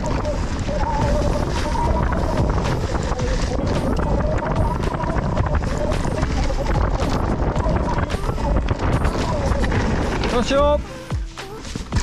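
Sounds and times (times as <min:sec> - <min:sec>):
wind buffeting microphone: 0:00.0 - 0:11.1
bike rattling over trail: 0:00.0 - 0:12.0.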